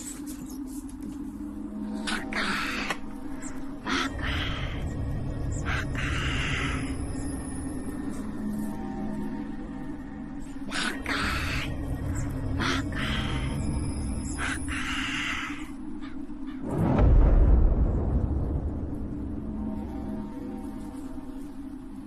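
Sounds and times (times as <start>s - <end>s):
deep loud low swell: 0.0s - 15.9s, 16.6s - 22.0s
ominous film score drone: 0.0s - 22.0s
bird calls: 2.0s - 16.7s.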